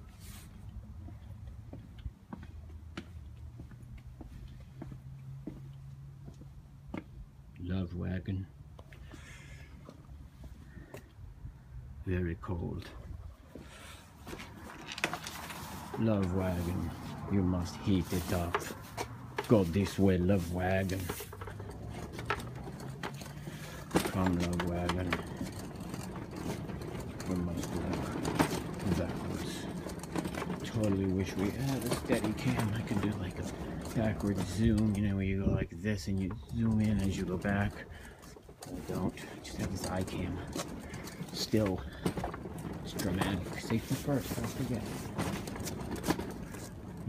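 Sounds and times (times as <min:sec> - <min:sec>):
footsteps on concrete: 0:00.2 - 0:07.2, 0:13.5 - 0:21.6
hand cart wheels rolling on concrete: 0:12.7 - 0:47.0
crate rattling: 0:14.2 - 0:47.0.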